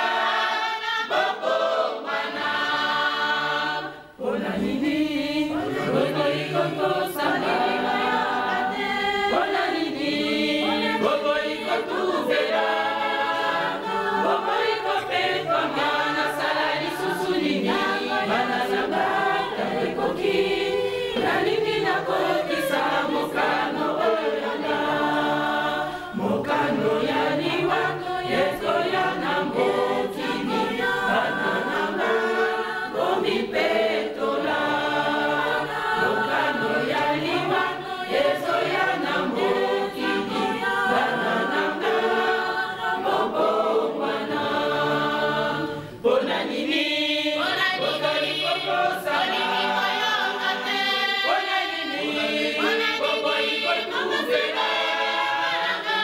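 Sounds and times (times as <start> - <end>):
church choir singing: 0.0 - 56.0.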